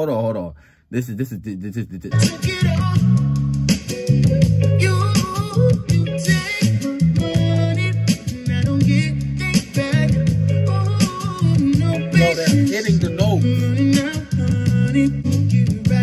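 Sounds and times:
man singing: 1.0 - 3.4, 4.8 - 16.0
bass guitar: 1.4 - 16.0
guitar: 2.0 - 16.0
drums: 2.1 - 16.0.

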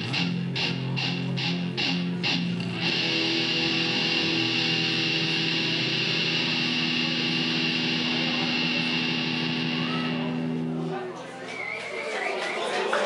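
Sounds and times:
electric guitars holding chord: 0.0 - 11.2.

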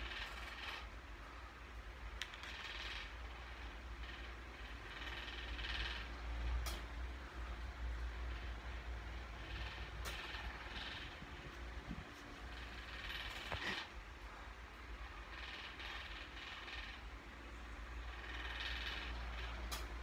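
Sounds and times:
cat purring: 7.5 - 14.4.

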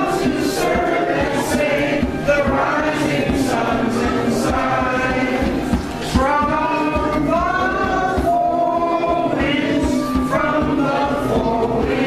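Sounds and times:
group singing in chorus: 0.0 - 12.0.

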